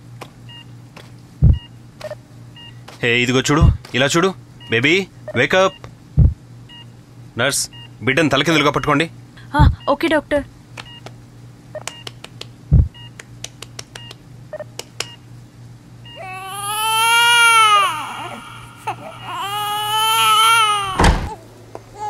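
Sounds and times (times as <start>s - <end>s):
newborn baby crying: 16.1s - 22.0s.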